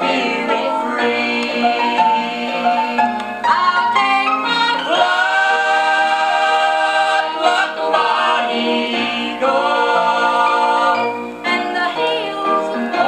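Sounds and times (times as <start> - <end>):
vocal group singing in harmony: 0.0 - 13.0.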